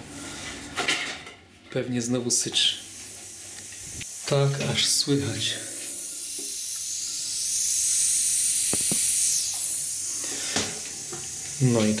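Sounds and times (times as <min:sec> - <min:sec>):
air hissing from radiator valve: 0:02.6 - 0:12.0.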